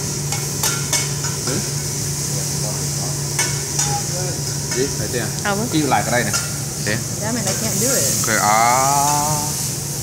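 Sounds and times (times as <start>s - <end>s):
grill sizzling: 0.0s - 10.0s.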